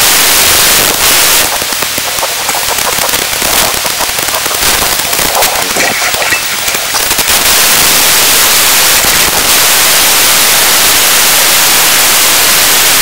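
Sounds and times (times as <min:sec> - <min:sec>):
radio static hiss and crackling: 0:00.0 - 0:13.0.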